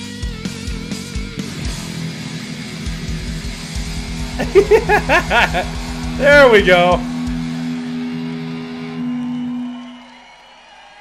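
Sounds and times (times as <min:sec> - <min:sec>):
rock band held chord: 0:00.1 - 0:10.6.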